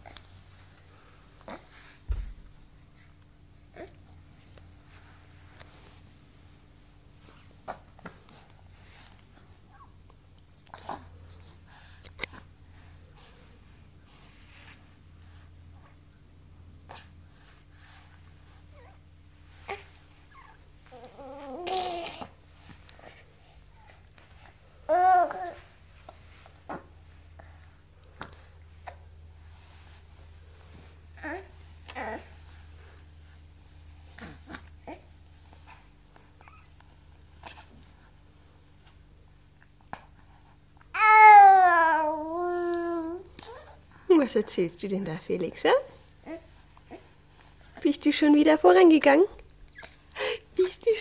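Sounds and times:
baby whining: 19.7s - 22.4s, 24.9s - 25.7s, 31.2s - 32.4s, 40.9s - 43.8s.

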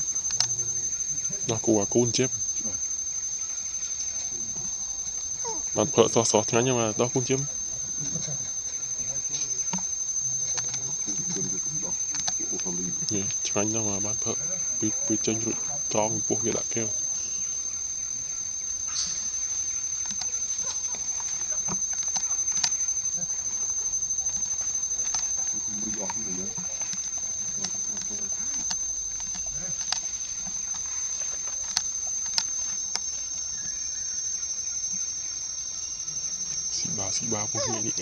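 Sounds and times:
faint outdoor background noise: 0.0s - 38.0s
high-pitched insect drone: 0.0s - 38.0s.

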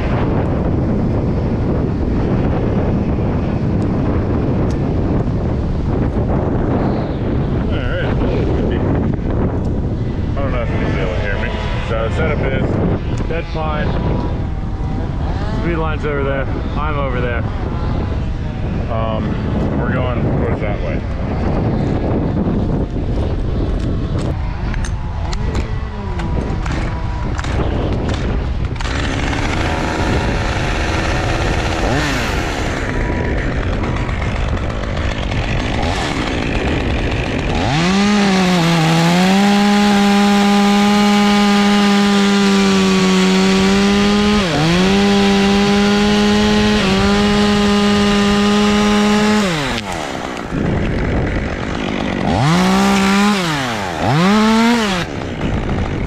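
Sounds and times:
wind noise: 0.0s - 56.0s
chainsaw revving: 10.0s - 19.8s, 23.0s - 56.0s.

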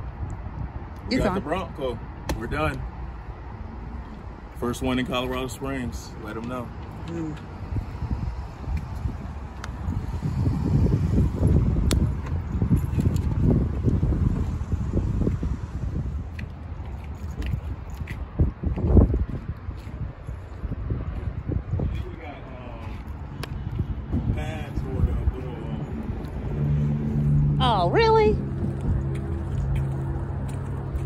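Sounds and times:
wind buffeting microphone: 3.9s - 31.0s.

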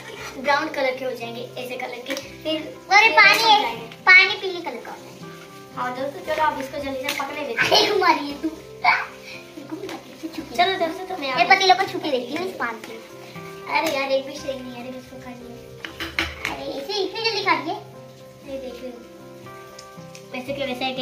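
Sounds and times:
children talking: 0.0s - 5.1s, 5.8s - 13.0s, 16.4s - 19.1s
background music: 0.0s - 21.0s.

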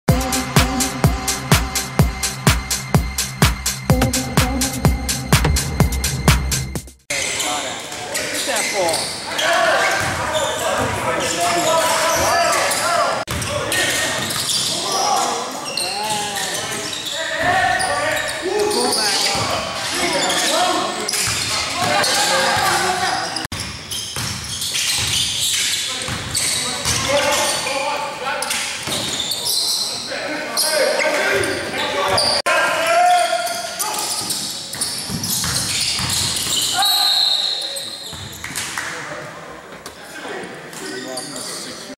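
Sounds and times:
electronic dance music: 0.1s - 7.0s
players' voices and shouts: 7.1s - 23.5s, 25.8s - 34.7s, 36.3s - 41.9s
basketball game echoing in gym: 7.1s - 41.9s
sneakers squeaking on hardwood: 7.2s - 32.5s, 33.2s - 38.6s
basketball bouncing on court: 23.5s - 25.3s, 26.1s - 27.1s, 34.2s - 36.7s.

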